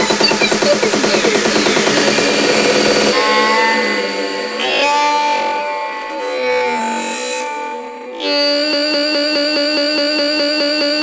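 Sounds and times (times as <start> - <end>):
fast synth pattern: 0.0 - 6.4
falling synth sweep: 0.0 - 8.1
held synth notes: 0.0 - 8.3
bass: 0.0 - 11.0.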